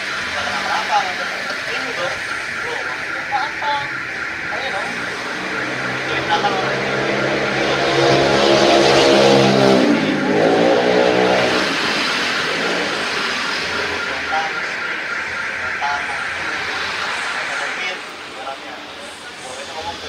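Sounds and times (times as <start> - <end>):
traffic noise: 0.0 - 20.0
vehicle engine passing by: 4.0 - 15.2.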